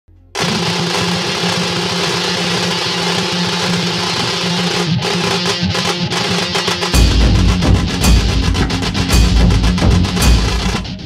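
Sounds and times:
film projector clatter: 0.4 - 10.8
low hum: 7.0 - 11.0.

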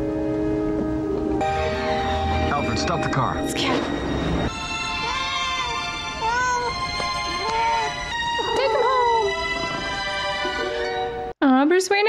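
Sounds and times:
orchestral film score: 1.4 - 11.3
cat meowing: 4.5 - 9.5.

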